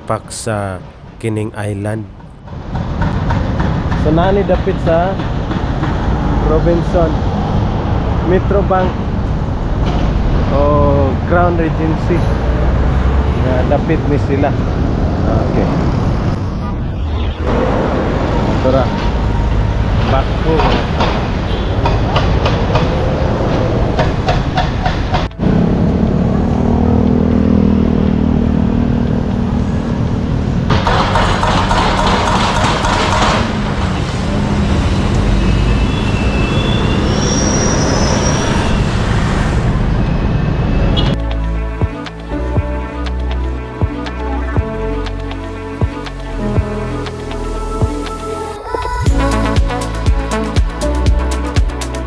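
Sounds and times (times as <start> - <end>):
vehicle engines passing: 0.0 - 52.0
steady engine drone: 2.3 - 35.9
sharp knocks: 20.5 - 23.0, 30.7 - 33.6.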